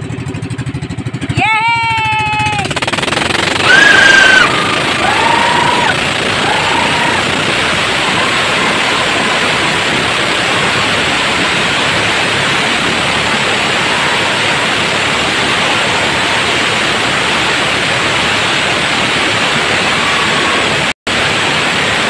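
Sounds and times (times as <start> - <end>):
wind and water spray rushing: 3.3 - 22.0.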